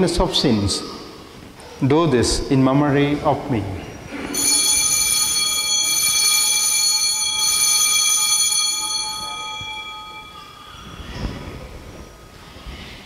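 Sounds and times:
altar bell ringing: 4.3s - 12.3s.

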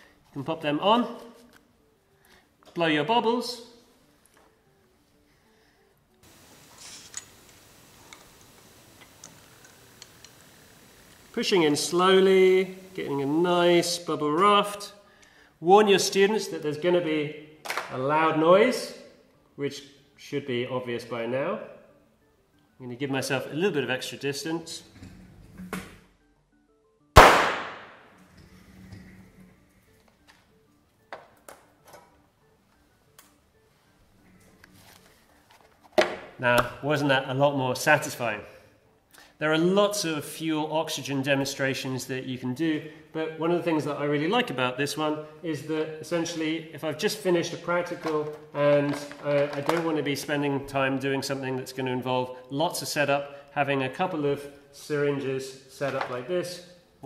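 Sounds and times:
soap bubbles exploding bang: 27.2s - 27.9s.

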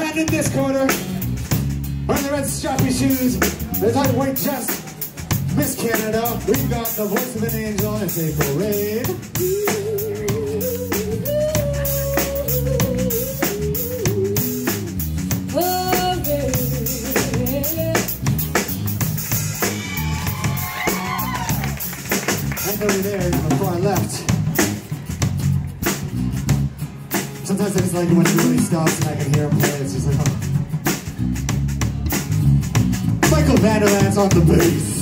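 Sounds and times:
live rock band: 0.0s - 35.0s
woman singing: 9.4s - 14.9s, 15.5s - 18.2s.

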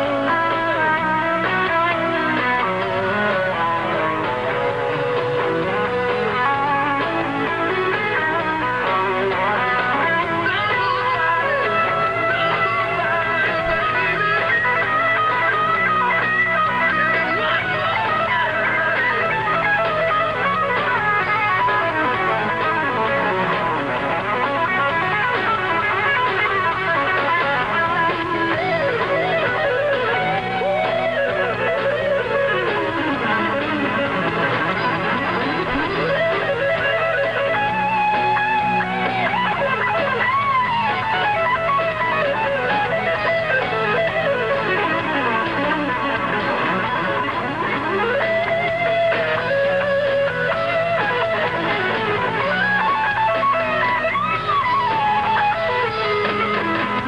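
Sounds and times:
electric guitar solo: 0.0s - 57.0s
rock band backing: 0.0s - 57.0s.

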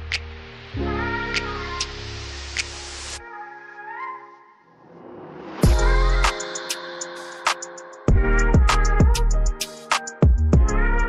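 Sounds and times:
sustained chords over bass: 5.6s - 6.3s, 8.1s - 9.6s
sharp percussion hits: 5.6s - 8.8s.

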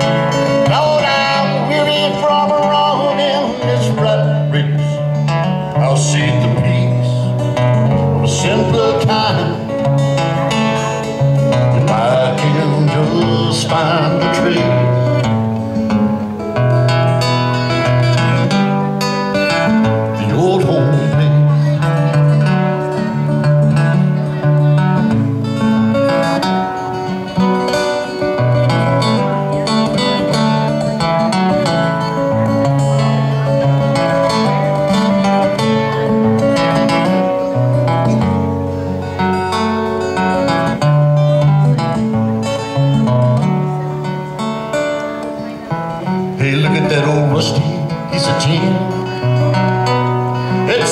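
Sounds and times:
acoustic guitar picking and strumming: 0.0s - 50.9s.

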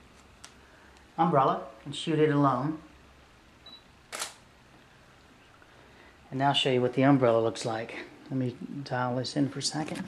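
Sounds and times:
camera shutter click: 4.1s - 4.4s.

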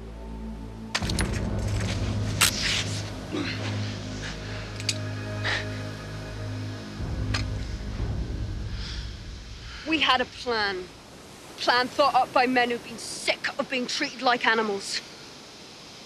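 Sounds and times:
dramatic music with low drone: 0.0s - 11.1s.

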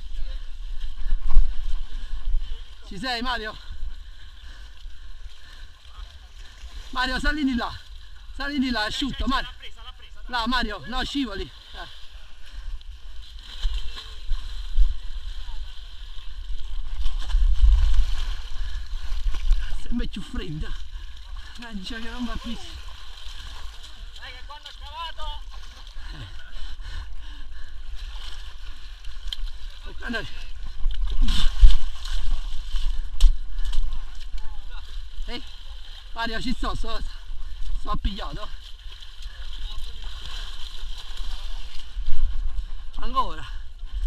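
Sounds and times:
muddy water sloshing: 11.2s - 43.0s.

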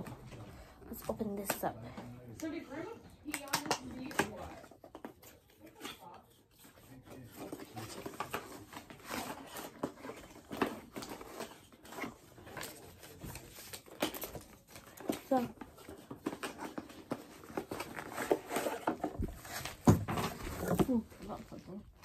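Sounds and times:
gift packaging crinkling: 3.3s - 22.0s.

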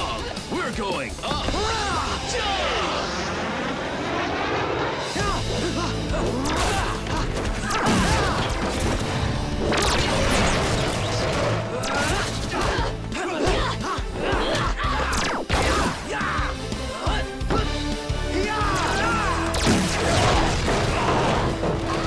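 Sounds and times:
driving action music: 0.0s - 22.0s
punch and whack effects: 7.5s - 9.0s, 18.8s - 22.0s.

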